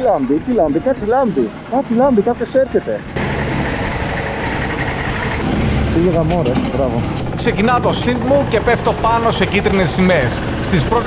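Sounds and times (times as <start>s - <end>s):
kart engine running: 0.0s - 11.0s.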